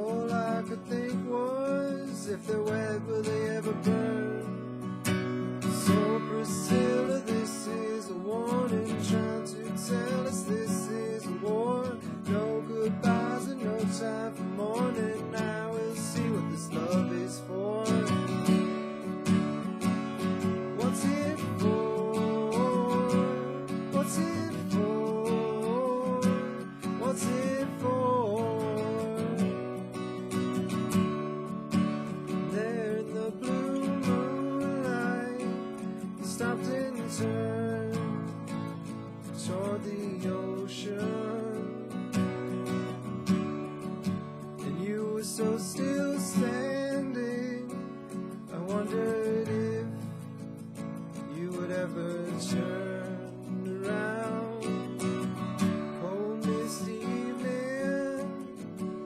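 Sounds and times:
acoustic guitar strummed chords: 0.0s - 59.0s.

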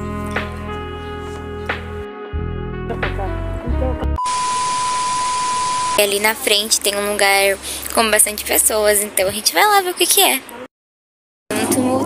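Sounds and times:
steady beep tone: 4.2s - 6.4s
white noise hiss: 4.3s - 10.4s.

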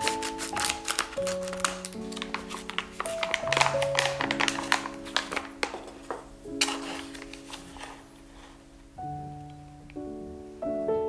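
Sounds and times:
paper bag crinkling: 0.0s - 8.7s
background music with held notes: 0.0s - 11.0s.

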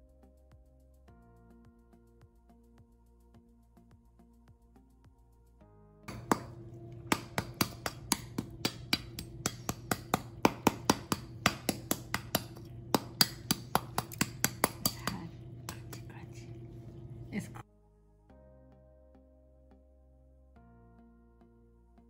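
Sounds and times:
knife tapping crisp pork skin: 6.1s - 16.2s.

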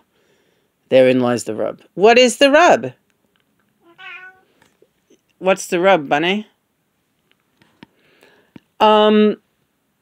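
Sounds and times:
cat meowing: 3.8s - 4.5s.

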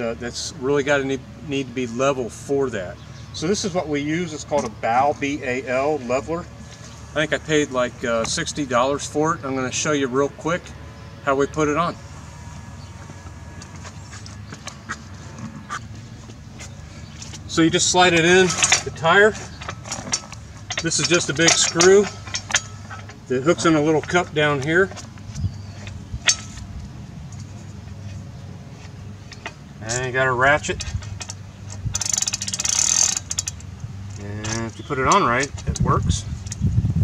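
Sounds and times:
steady low hum: 0.0s - 37.0s
steel tire leveler clacking: 13.6s - 26.7s, 29.2s - 36.6s.

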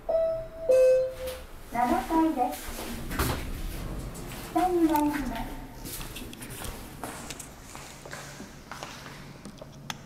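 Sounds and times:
elevator two-note chime: 0.0s - 1.5s
recorded voice announcement: 4.5s - 5.8s.

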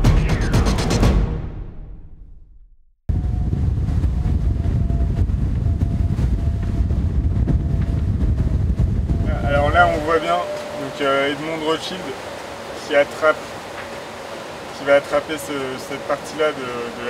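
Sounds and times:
theme tune music: 0.0s - 2.4s, 9.3s - 13.2s
wind buffeting microphone: 3.1s - 15.1s
water rushing past hulls: 3.2s - 17.0s
faint steady whistle: 9.2s - 16.8s.

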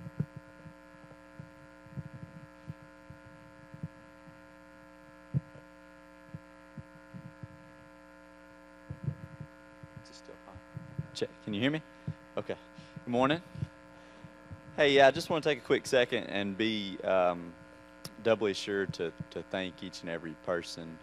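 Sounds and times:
microphone handling thuds: 0.0s - 4.4s, 5.3s - 5.6s, 6.3s - 7.9s, 8.8s - 11.3s, 12.0s - 15.3s
steady electrical hum: 0.0s - 21.0s.

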